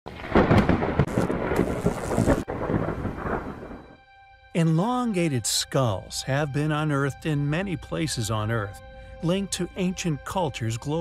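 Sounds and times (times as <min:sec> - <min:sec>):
rain-like hiss: 0:00.1 - 0:03.9
thunder crackling and rumbling: 0:00.1 - 0:04.0.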